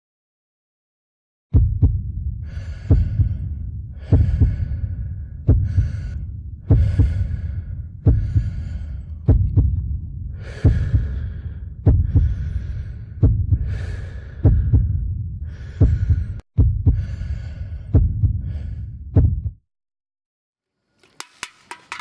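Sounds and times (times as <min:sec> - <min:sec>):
heartbeat thumps: 0:01.5 - 0:19.6.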